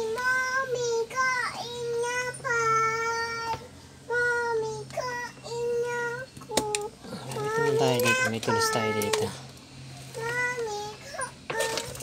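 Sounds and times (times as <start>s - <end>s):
child singing: 0.0s - 9.4s, 10.2s - 12.0s.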